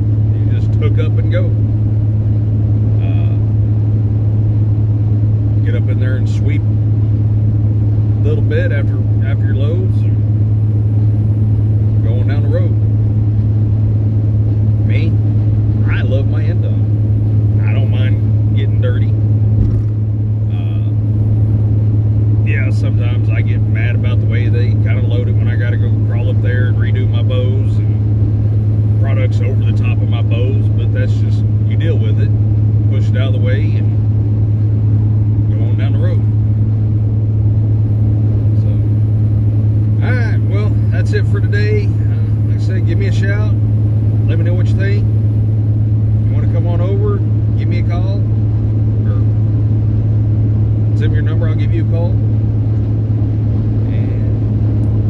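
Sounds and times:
diesel truck engine drone: 0:00.0 - 0:55.0
road noise: 0:00.0 - 0:55.0
man talking: 0:00.4 - 0:01.6, 0:03.0 - 0:03.5, 0:05.6 - 0:06.7, 0:08.2 - 0:10.2, 0:12.0 - 0:12.8, 0:14.8 - 0:15.2, 0:15.8 - 0:16.9, 0:17.6 - 0:19.2, 0:20.5 - 0:21.0, 0:22.4 - 0:28.0, 0:29.0 - 0:34.0, 0:35.4 - 0:36.3, 0:40.0 - 0:43.6, 0:44.2 - 0:45.1, 0:46.2 - 0:48.3, 0:51.0 - 0:52.2, 0:53.8 - 0:54.4.

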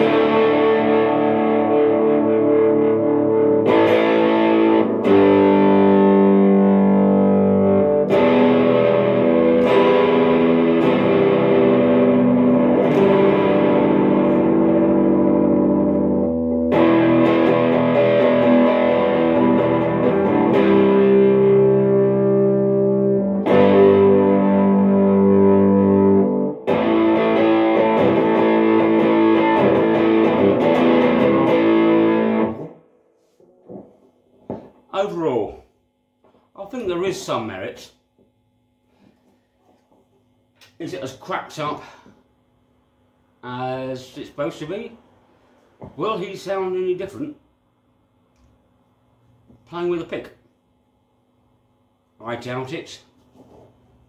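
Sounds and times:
distorted electric guitar chords: 0:00.0 - 0:34.9.

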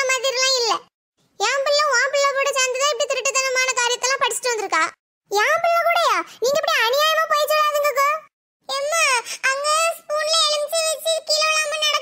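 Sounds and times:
high-pitched cartoon voice: 0:00.0 - 0:12.0.

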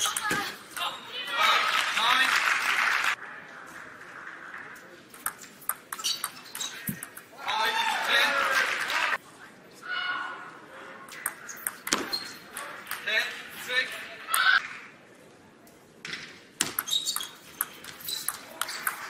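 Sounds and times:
voices and shouts in a hall: 0:00.0 - 0:05.0, 0:07.3 - 0:11.1
table tennis ball clicks: 0:11.1 - 0:13.1, 0:16.6 - 0:19.0.

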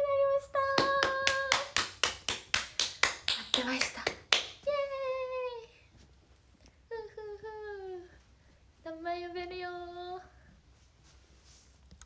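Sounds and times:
rapid hand clapping: 0:00.7 - 0:04.6.

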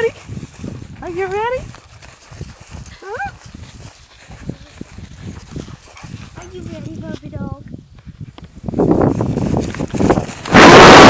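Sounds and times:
low irregular rustling: 0:00.0 - 0:10.5.

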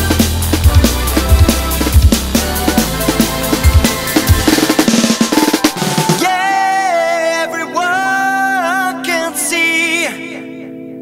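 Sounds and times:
fast drum fill: 0:00.0 - 0:06.5
electronic rock music: 0:00.0 - 0:08.5
held synth tone: 0:00.7 - 0:06.5.

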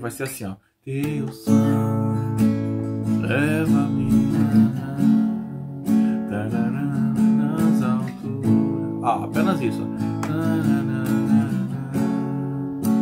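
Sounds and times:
acoustic guitar strumming: 0:01.0 - 0:13.0.

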